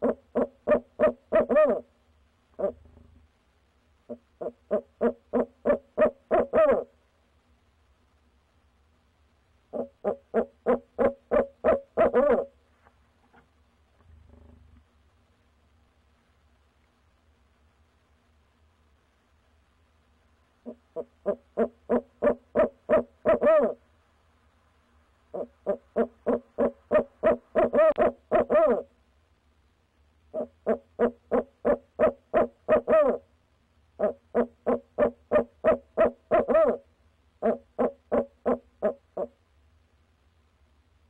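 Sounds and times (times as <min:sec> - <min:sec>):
owl hooting: 0:00.0 - 0:01.9, 0:02.5 - 0:02.9, 0:04.1 - 0:07.0, 0:09.7 - 0:12.6, 0:20.6 - 0:23.8, 0:25.3 - 0:29.0, 0:30.3 - 0:33.3, 0:34.0 - 0:39.4.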